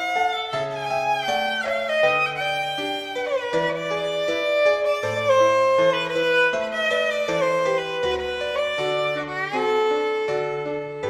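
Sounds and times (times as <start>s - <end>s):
violin melody: 0.0s - 11.0s.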